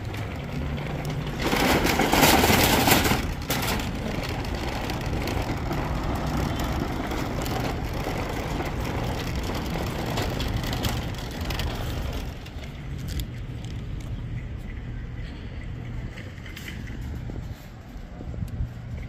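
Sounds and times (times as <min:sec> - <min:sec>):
shopping cart rattling on asphalt: 0:00.0 - 0:19.0.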